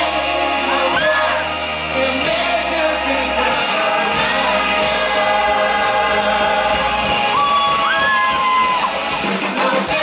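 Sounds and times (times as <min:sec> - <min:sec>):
choir-like singing voices: 0:00.0 - 0:10.0
electric guitars and bass: 0:00.0 - 0:10.0.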